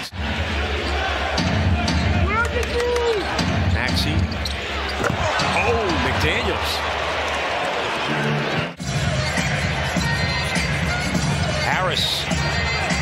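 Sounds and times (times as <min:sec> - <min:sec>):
arena crowd noise: 0:00.0 - 0:13.0
sneaker squeaks: 0:04.2 - 0:05.6.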